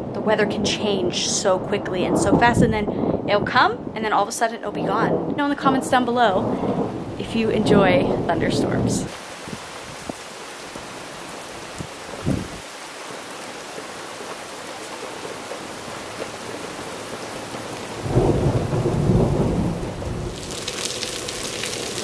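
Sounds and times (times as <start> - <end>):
thunder rumbling: 0.0 - 10.1, 11.8 - 12.6, 17.9 - 22.0
steady rain falling: 0.0 - 22.0.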